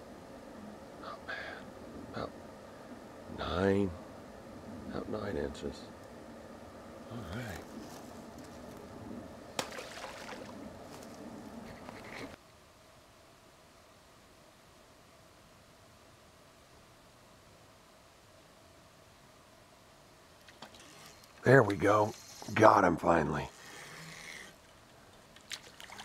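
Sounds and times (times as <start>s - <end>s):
faint steady hum: 0.0s - 26.0s
rustling and handling noise: 7.4s - 8.9s.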